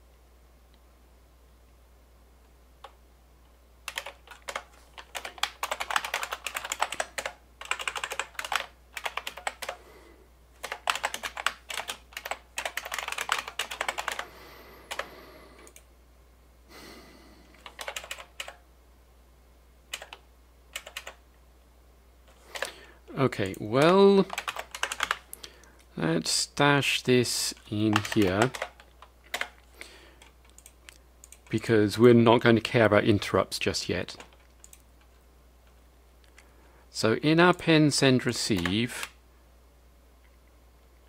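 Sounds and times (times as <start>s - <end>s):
typing on computer keyboard: 3.9s - 9.8s, 10.6s - 14.3s, 14.9s - 15.1s, 17.5s - 18.6s, 19.9s - 21.2s, 23.4s - 25.2s, 27.9s - 29.6s
person speaking: 22.4s - 28.9s, 31.4s - 34.4s, 36.9s - 39.2s.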